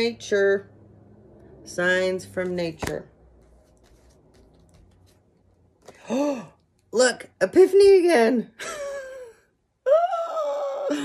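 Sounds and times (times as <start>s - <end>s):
paper cards handled: 2.4s - 6.0s.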